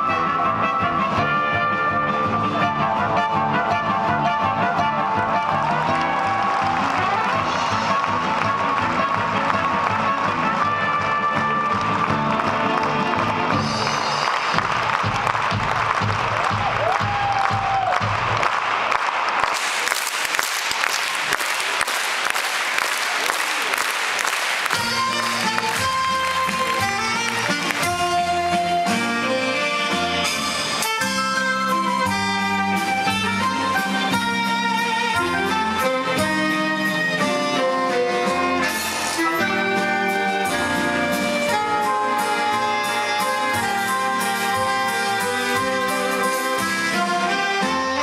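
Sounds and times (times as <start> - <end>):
circus music: 0.0 - 48.0
audience applause: 4.6 - 28.5.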